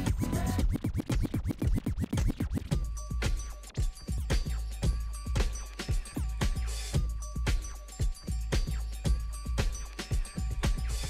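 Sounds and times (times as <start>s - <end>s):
turntable scratching: 0.0s - 2.8s
dance music: 0.0s - 4.7s.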